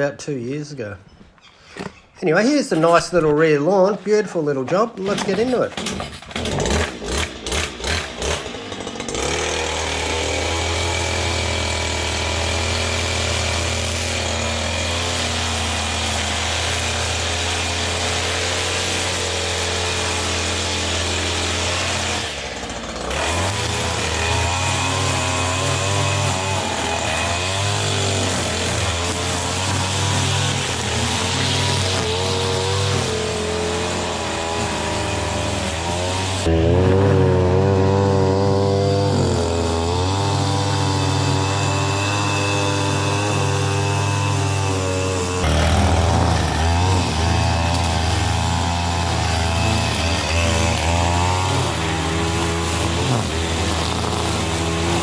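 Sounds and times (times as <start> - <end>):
string trimmer engine running: 5.0 - 55.0.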